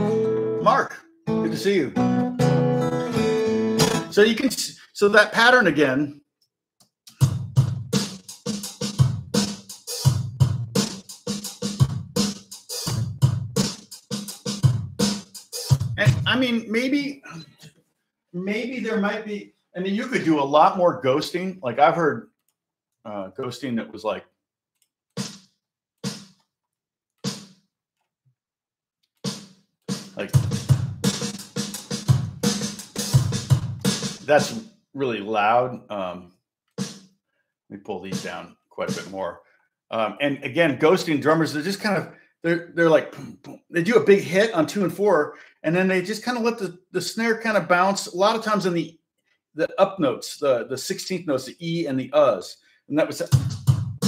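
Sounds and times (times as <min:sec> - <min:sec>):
acoustic guitar strumming: 0:00.0 - 0:04.2
programmed drum groove: 0:03.8 - 0:04.2, 0:07.1 - 0:16.6, 0:25.1 - 0:26.5, 0:27.2 - 0:27.6, 0:29.2 - 0:34.6, 0:36.7 - 0:37.1, 0:38.1 - 0:39.2, 0:53.2 - 0:54.0.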